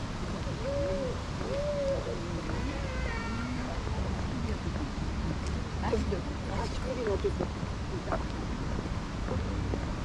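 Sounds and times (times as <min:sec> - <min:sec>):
faint voices of passers-by: 0:00.0 - 0:10.0
wind on microphone: 0:00.0 - 0:10.0.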